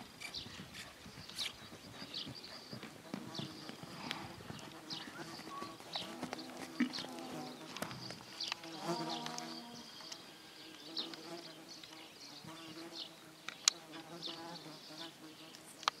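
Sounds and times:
flying insects buzzing: 0.0s - 16.0s.

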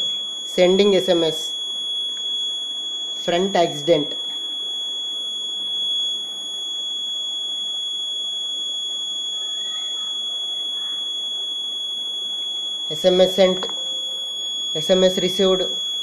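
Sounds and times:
high-pitched electronic tone: 0.0s - 6.6s, 8.9s - 16.0s.

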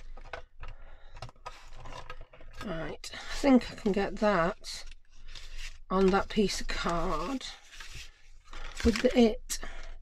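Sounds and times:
plastic clicks and scrapes: 0.0s - 2.8s, 4.7s - 9.3s.

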